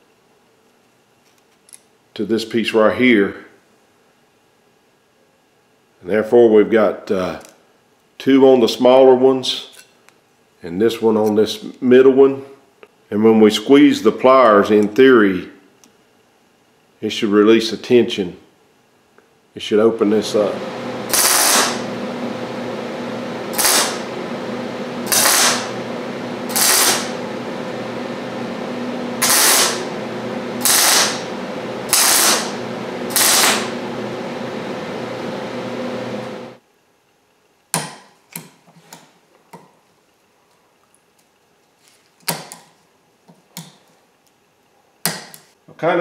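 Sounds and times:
electric welder humming: 20.2s - 36.6s
arc welding bursts: 20.3s - 22.0s, 23.4s - 27.4s, 29.1s - 34.1s.

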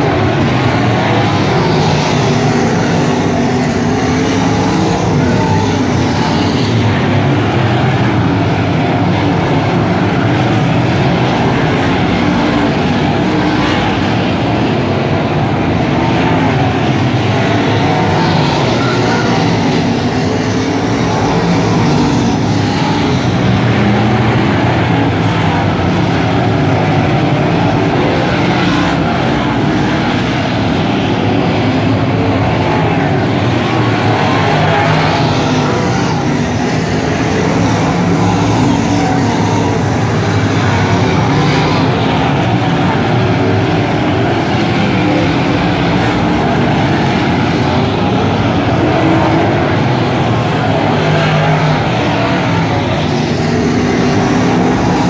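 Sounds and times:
race car engines running hard: 0.0s - 55.0s.

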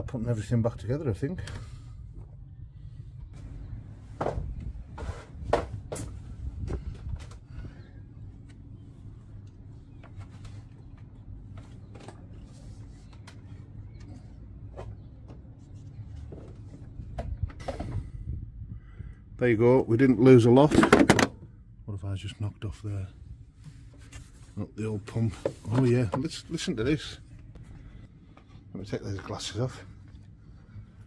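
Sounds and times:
low rumble: 1.6s - 9.9s
clicks and knocks of engine parts: 20.6s - 21.5s.

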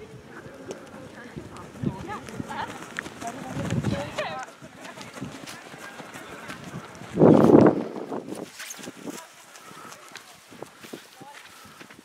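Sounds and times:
running footsteps on grass: 0.0s - 12.0s
voices calling and chatting: 0.0s - 12.0s.

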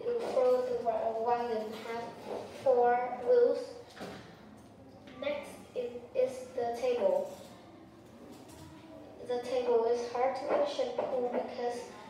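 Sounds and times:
child speaking: 0.0s - 3.9s, 5.0s - 7.8s, 8.6s - 12.0s.

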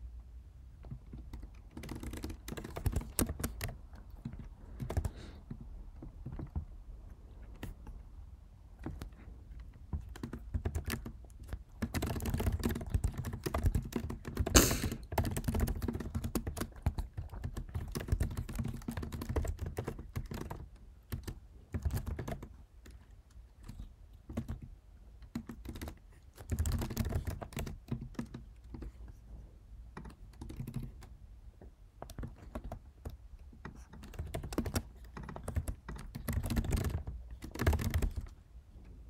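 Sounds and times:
computer keyboard typing: 0.8s - 8.0s, 8.8s - 29.2s, 29.9s - 31.2s, 32.0s - 38.4s.

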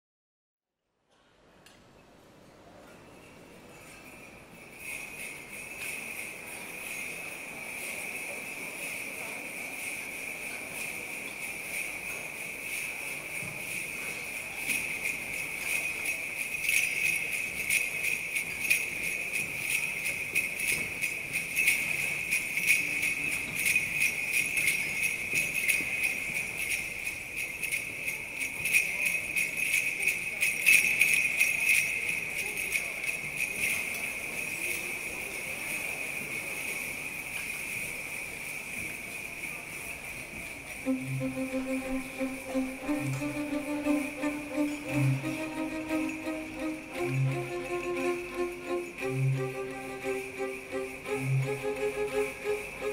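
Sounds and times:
jingle bells shaken: 3.8s - 52.9s.

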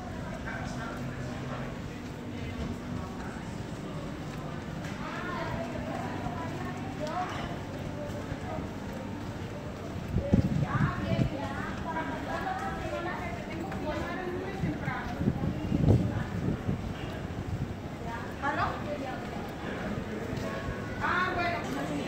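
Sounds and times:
people talking: 0.0s - 22.0s
footsteps on brick paving: 1.0s - 17.4s.

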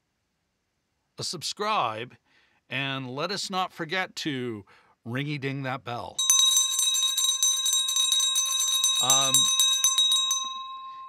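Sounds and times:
bell ringing in rapid trill: 6.2s - 11.0s.

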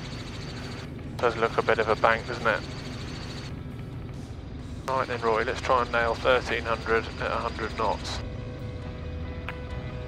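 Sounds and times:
helicopter engine and rotor drone: 0.0s - 10.0s.

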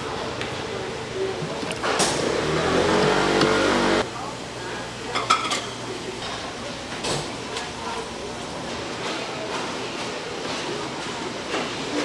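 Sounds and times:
loud mechanical drone: 2.2s - 4.0s
kitchen utensils clinking: 5.1s - 6.5s.

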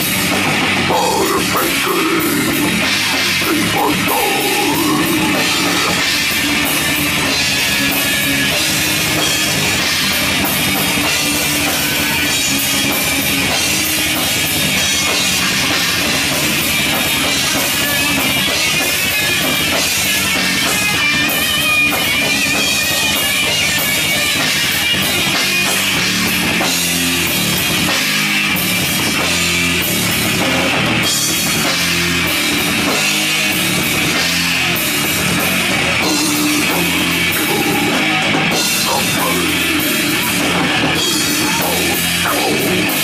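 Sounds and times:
death metal band playing live: 0.0s - 43.0s.

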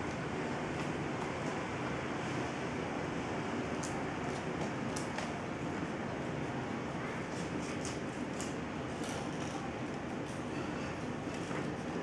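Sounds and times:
scissors cutting paper: 7.4s - 9.6s.

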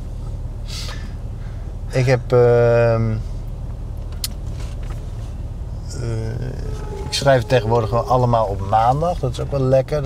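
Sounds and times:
car engine rumbling: 0.0s - 10.0s.

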